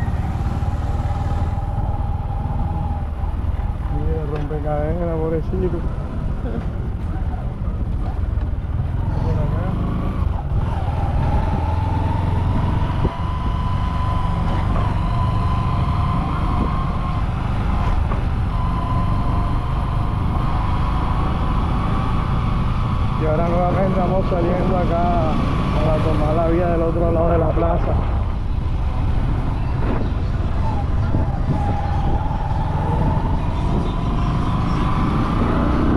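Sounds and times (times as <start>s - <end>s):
vehicle engine running: 0.0s - 35.9s.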